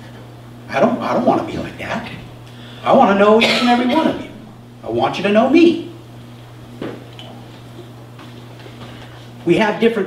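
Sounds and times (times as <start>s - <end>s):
low hum: 0.0s - 9.3s.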